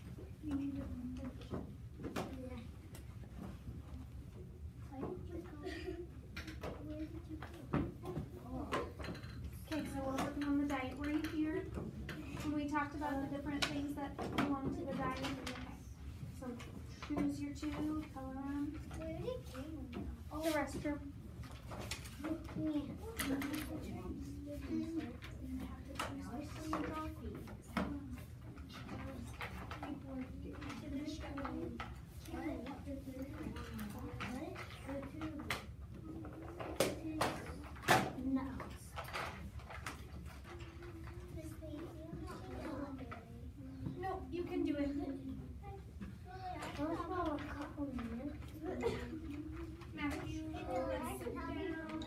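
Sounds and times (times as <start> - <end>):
children talking: 0.0 - 52.0.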